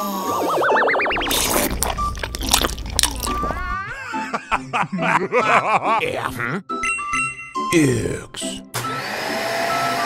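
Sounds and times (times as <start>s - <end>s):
music: 1.3s - 10.0s.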